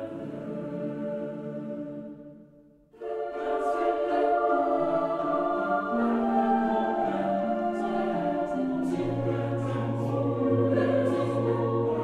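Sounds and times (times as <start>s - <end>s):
choir singing slow notes: 0.0s - 12.0s.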